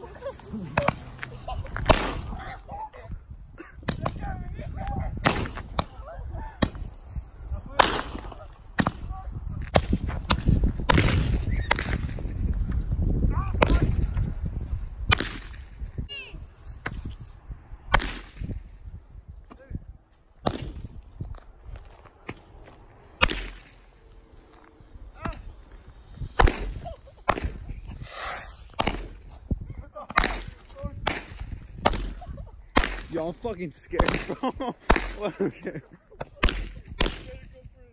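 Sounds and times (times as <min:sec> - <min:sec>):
fireworks whistling: 0:28.0 - 0:28.8.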